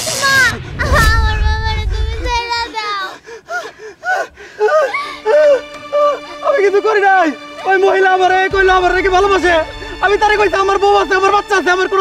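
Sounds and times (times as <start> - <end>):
low rumble: 0.2 - 2.4
person crying out: 4.1 - 6.5.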